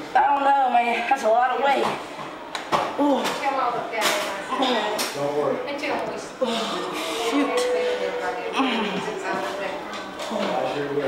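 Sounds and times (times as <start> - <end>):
indistinct voices talking: 4.4 - 11.0.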